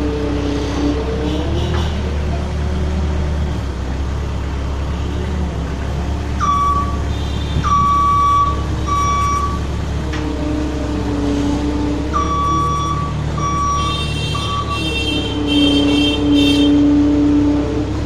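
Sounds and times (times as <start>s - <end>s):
diesel engine running: 0.0s - 18.0s
hydraulics whine: 2.0s - 18.0s
reversing alarm beeps: 6.4s - 7.0s, 7.6s - 9.6s, 12.2s - 14.8s.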